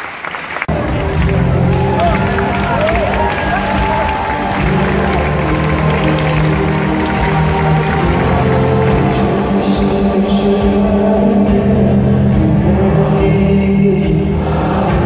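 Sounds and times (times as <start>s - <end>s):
audience voices and cheering: 0.0s - 10.9s, 12.8s - 15.0s
string orchestra playing chords: 0.7s - 15.0s.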